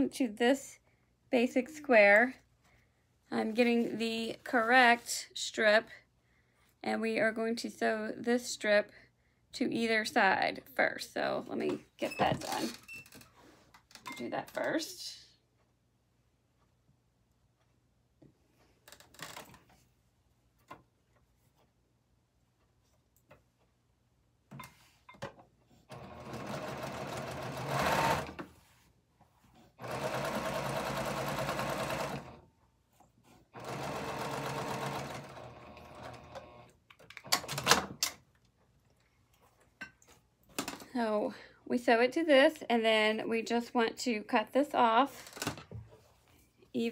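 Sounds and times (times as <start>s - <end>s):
sewing machine stitching: 25.9s - 28.5s, 29.8s - 32.4s, 33.5s - 36.7s.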